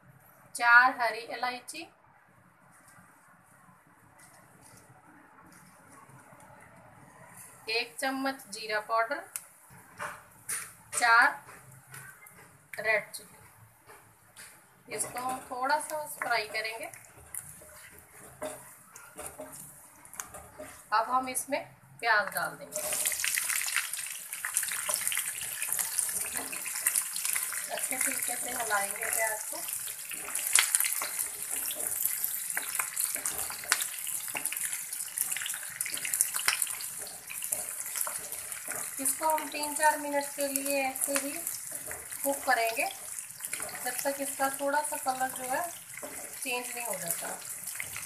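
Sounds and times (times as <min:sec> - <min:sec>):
spices sizzling in hot oil: 0:07.4 - 0:21.6, 0:22.2 - 0:48.0
spatula clicking and scraping pan: 0:09.7 - 0:21.0, 0:22.7 - 0:48.0.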